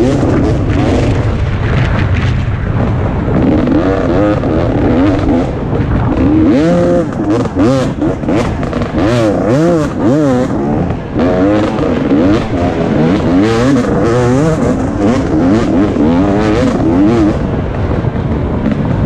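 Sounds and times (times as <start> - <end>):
two-stroke motorcycle engine revving: 0.0 - 19.0.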